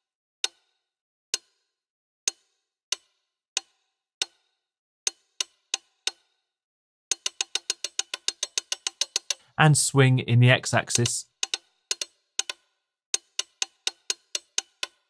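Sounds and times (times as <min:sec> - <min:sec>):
watch ticks: 0:07.1 - 0:09.4, 0:11.0 - 0:12.6.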